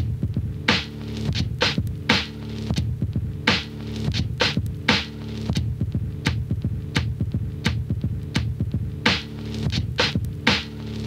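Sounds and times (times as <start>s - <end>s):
funky drum loop: 0.0s - 11.0s.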